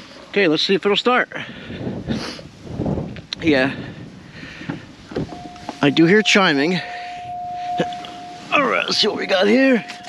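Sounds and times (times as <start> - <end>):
car warning chime: 5.3 - 10.0.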